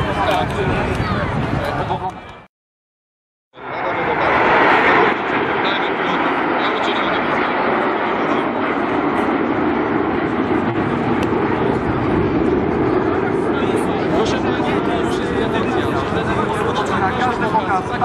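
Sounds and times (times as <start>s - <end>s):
jet engines roaring overhead: 0.0s - 2.5s, 3.6s - 18.0s.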